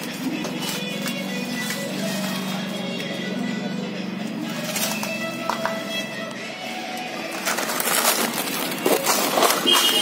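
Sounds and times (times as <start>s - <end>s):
rustling and scraping: 4.4s - 6.0s, 7.0s - 10.0s.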